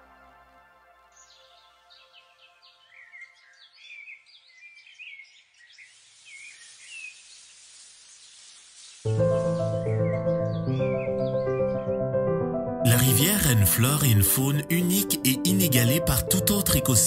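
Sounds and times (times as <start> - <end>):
soft background music: 0.0 - 3.8, 9.1 - 17.0
birds chirping and calling: 1.2 - 11.9
steady high hiss: 5.8 - 9.2.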